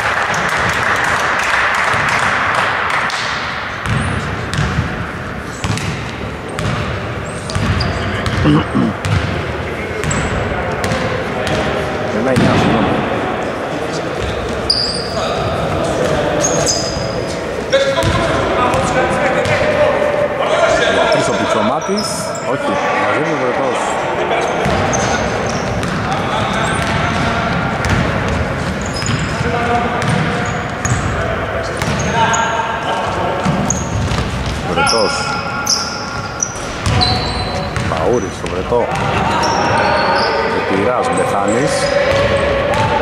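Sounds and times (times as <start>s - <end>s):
voices echoing: 0.0s - 43.0s
shoe squeaks: 6.5s - 9.2s, 14.2s - 15.4s, 16.3s - 18.1s, 24.4s - 27.2s, 28.7s - 32.6s, 33.4s - 38.4s, 39.0s - 41.6s
basketball bouncing on hardwood: 7.6s - 9.3s.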